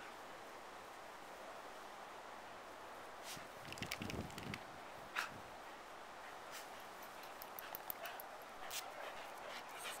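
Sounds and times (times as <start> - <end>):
dogs playing: 6.5 - 10.0.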